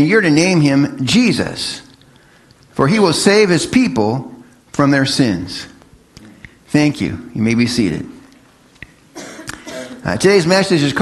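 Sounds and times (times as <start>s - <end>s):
throat-clearing cough: 9.1s - 10.1s.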